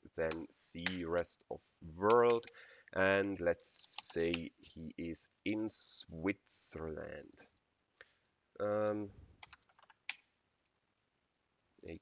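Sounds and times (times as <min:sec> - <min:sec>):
computer keyboard typing: 0:09.4 - 0:10.0.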